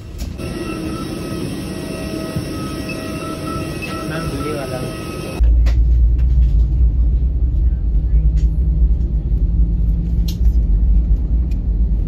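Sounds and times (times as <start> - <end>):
mechanical drone: 0.0 - 12.0
high whining tones: 0.3 - 5.4.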